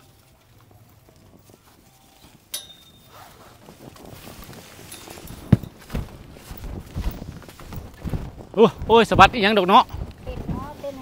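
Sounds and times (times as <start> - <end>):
rustling: 0.0 - 11.0.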